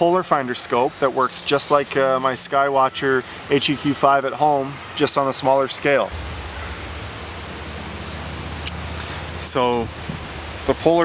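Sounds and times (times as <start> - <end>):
constant low rumble: 6.0 - 11.0.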